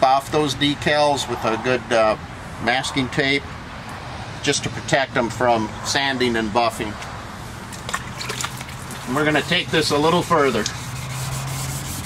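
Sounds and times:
wet sanding scrubbing: 8.7s - 12.0s.

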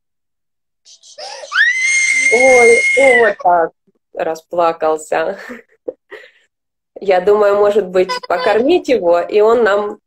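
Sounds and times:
baby screaming: 1.2s - 3.5s.

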